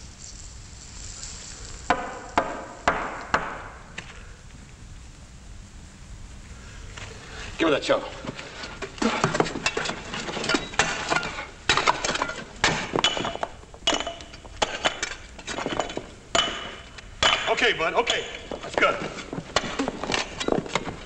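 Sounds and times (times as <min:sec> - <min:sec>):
loose rubble clattering: 0:08.1 - 0:21.0
metal tools clanking on stone: 0:08.2 - 0:21.0.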